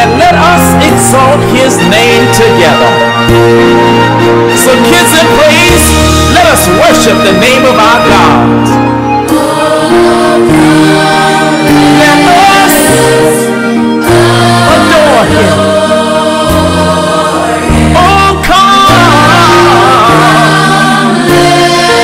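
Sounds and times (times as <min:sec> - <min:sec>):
gospel choir singing: 0:00.0 - 0:22.0
low instrumental accompaniment: 0:00.0 - 0:22.0.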